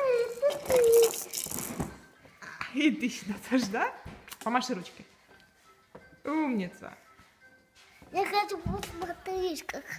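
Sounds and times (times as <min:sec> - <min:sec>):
plastic rattling toy: 0:00.5 - 0:02.0.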